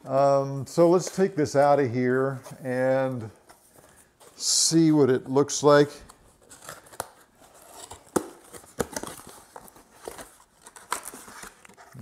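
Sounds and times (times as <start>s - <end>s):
packaging crinkling and rustling: 3.1s - 12.0s.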